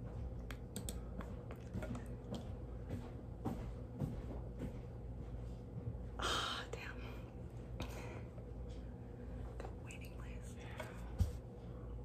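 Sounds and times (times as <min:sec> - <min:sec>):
low room hum: 0:00.0 - 0:12.0
woman whispering softly: 0:06.2 - 0:07.2, 0:09.6 - 0:11.2.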